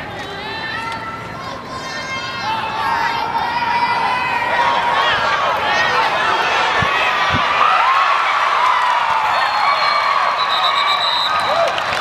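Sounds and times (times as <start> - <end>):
crowd cheering and yelling: 0.0 - 12.0
high steady whistle: 9.4 - 11.7.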